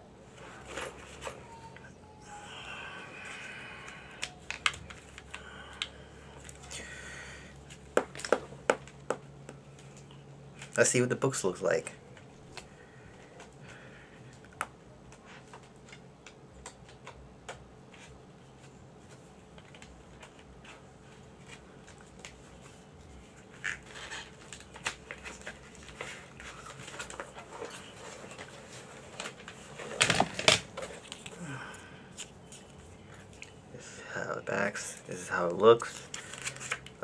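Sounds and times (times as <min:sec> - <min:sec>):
faint steady hum: 0:00.0 - 0:37.0
cd case clicks and rustles: 0:23.6 - 0:31.4.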